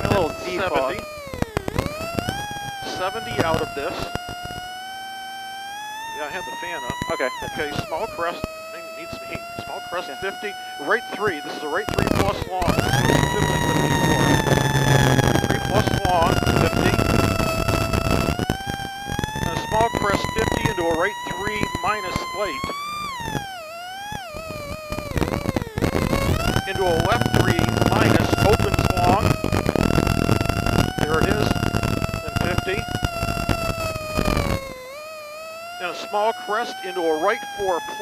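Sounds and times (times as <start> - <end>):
car engine whining: 0.0 - 38.0.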